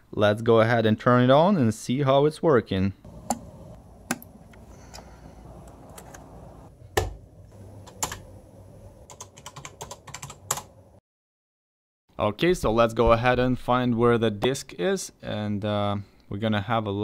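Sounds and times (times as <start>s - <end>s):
faint steady hum: 3.0s - 11.0s
keyboard and mouse clicks: 4.1s - 6.4s.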